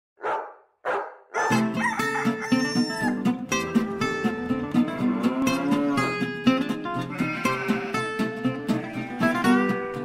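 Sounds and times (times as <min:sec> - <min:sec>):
dog barking: 0:00.2 - 0:01.6
guitar music: 0:01.5 - 0:10.0.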